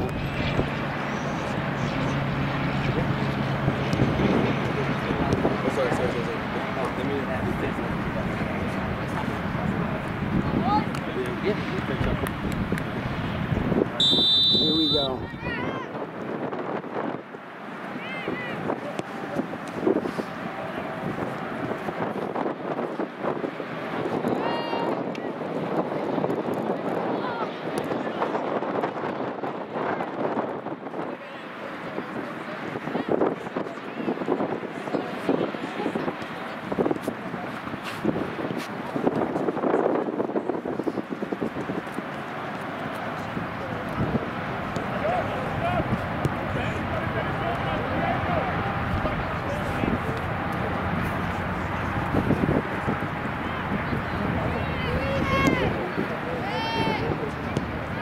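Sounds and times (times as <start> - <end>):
wind on microphone: 0.0 - 14.1, 15.0 - 17.4, 18.0 - 58.0
distant voices calling out: 42.0 - 58.0.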